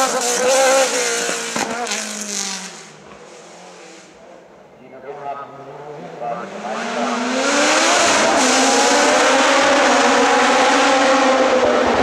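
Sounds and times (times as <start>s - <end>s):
race car engine accelerating: 5.6s - 12.0s.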